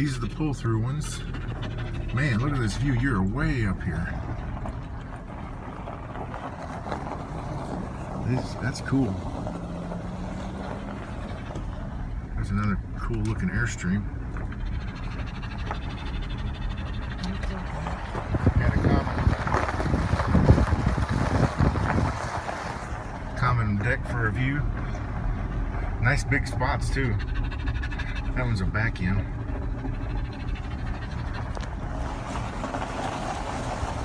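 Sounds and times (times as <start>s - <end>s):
car driving slowly from inside: 0.0s - 34.0s
wind buffeting microphone: 14.2s - 23.3s.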